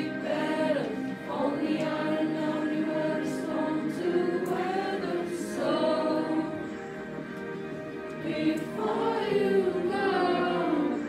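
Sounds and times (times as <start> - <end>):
choir singing held notes: 0.0 - 11.0.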